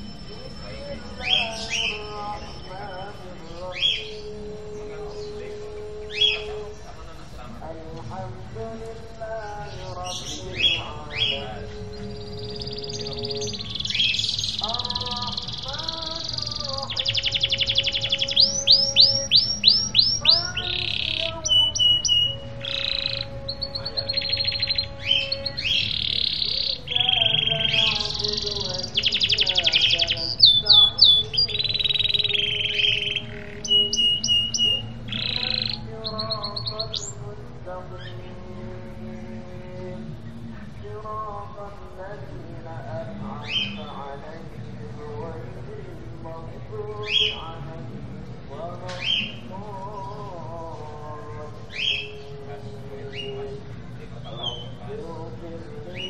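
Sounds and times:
canary singing trills: 0.0 - 7.4, 8.1 - 56.0.

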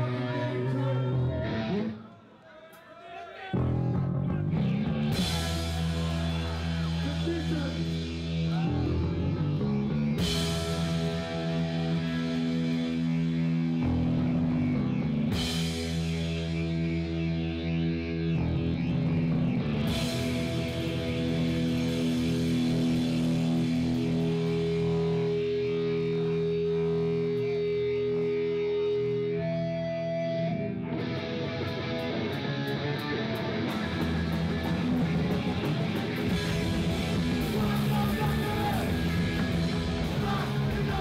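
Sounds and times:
electric guitar and bass chords: 0.0 - 2.0, 3.6 - 41.0
punk band playing loud: 3.6 - 29.0, 31.6 - 41.0
drums and cymbals: 5.1 - 8.8, 10.2 - 13.6, 33.9 - 41.0.

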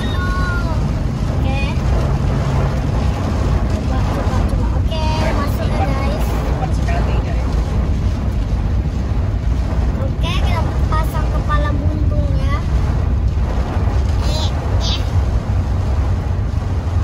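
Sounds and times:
car cabin rumble: 0.0 - 17.0.

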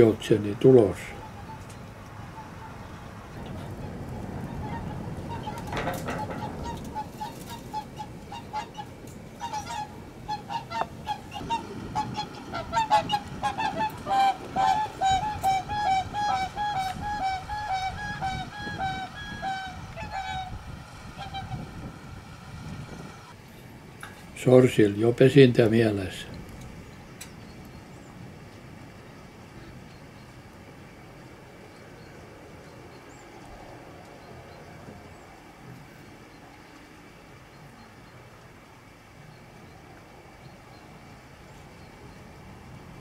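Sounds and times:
swans honking: 1.1 - 3.2, 4.4 - 23.4.

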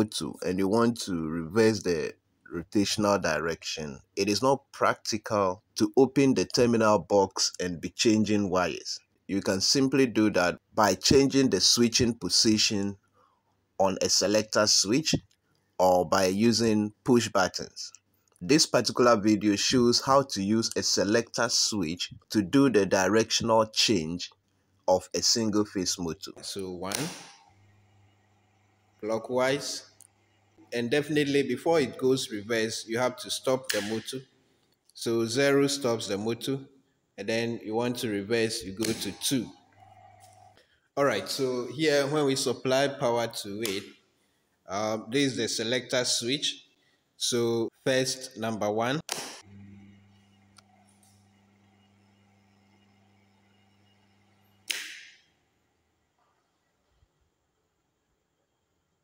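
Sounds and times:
electric motor humming: 49.4 - 54.6.

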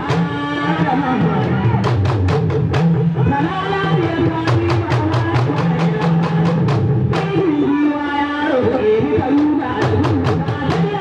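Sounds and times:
rapid sharp drum strikes: 1.2 - 7.5, 9.3 - 11.0.

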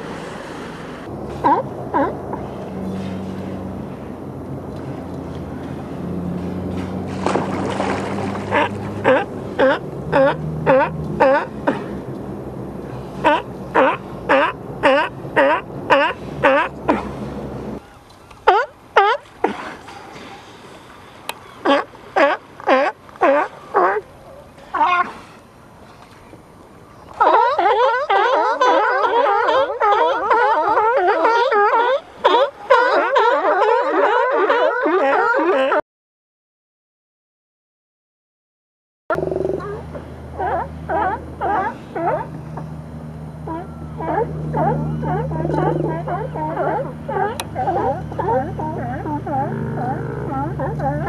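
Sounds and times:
sea lions barking: 1.4 - 2.5, 7.8 - 12.0, 13.1 - 17.2, 21.3 - 25.3, 27.1 - 35.8, 39.1 - 42.4, 43.4 - 51.0.

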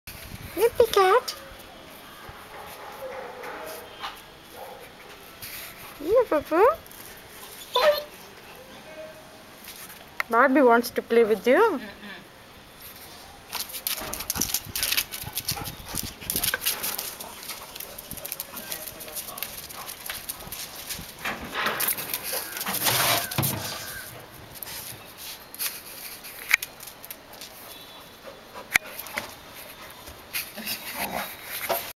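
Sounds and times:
dog whimpering: 7.6 - 8.2
dog claws scrabbling on concrete: 13.5 - 27.6.

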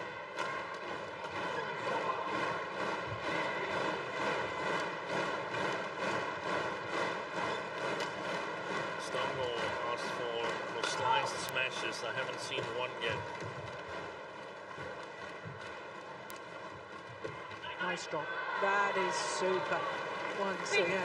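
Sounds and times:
arena crowd noise: 0.0 - 21.0.

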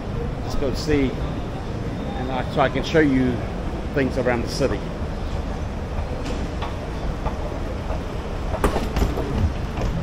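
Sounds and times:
train rumbling: 4.9 - 10.0.

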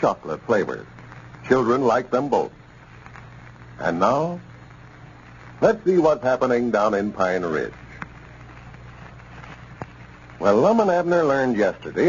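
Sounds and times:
low hiss and hum: 0.0 - 12.0.

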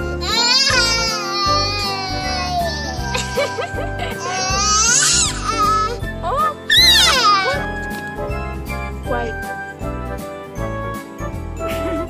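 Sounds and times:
toddler crying: 0.0 - 6.0, 6.7 - 7.8
background music: 0.0 - 12.0.

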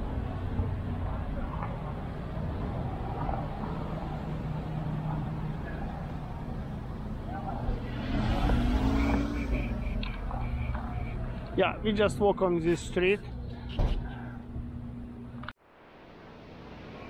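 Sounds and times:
vehicle engine pulling away: 3.5 - 10.4.

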